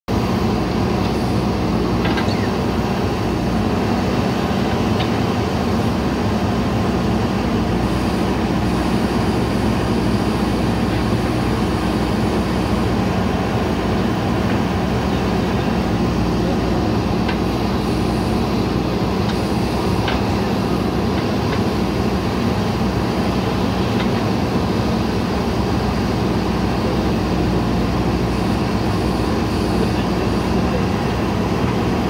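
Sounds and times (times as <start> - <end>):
diesel engine running: 0.1 - 32.0.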